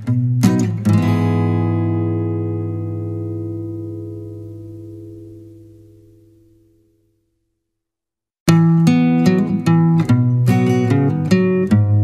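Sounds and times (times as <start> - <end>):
guitar strumming: 0.0 - 7.2, 8.5 - 12.0.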